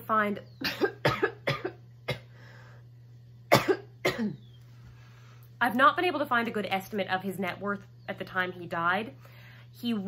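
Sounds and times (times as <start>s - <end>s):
woman coughing: 0.6s - 2.3s, 3.5s - 4.5s.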